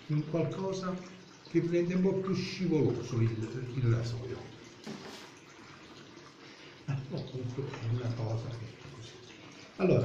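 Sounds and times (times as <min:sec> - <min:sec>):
tap running water: 0:00.0 - 0:10.0.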